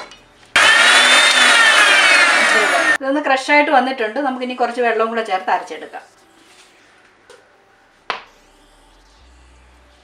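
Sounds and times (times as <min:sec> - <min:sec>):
mixer grinder motor whine: 0:00.5 - 0:03.0.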